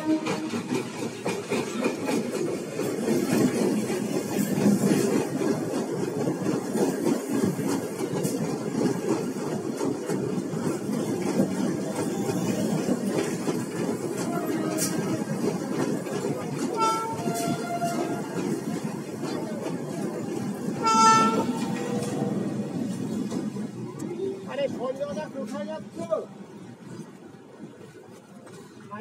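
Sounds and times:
train wheels rumbling on rail: 0.0 - 29.0.

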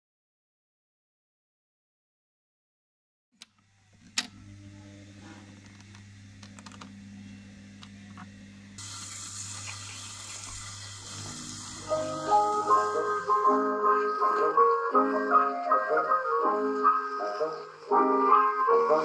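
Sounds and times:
orchestral music: 11.4 - 19.0.

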